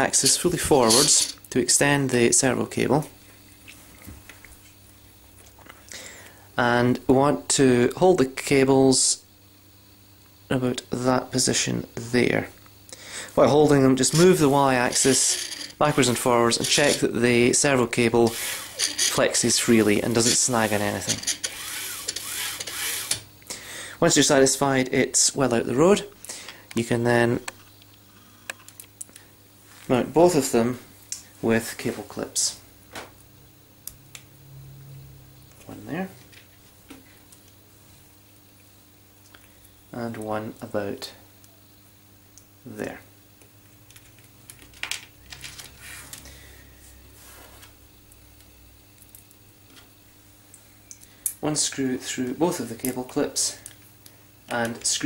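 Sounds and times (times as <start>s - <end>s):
low steady hum: 0.0s - 55.0s
cables rustling: 0.6s - 1.4s, 14.0s - 17.2s, 18.2s - 23.1s
plotter slide rubbing hiss: 14.0s - 17.1s, 18.2s - 23.2s, 45.8s - 46.2s, 47.2s - 47.8s.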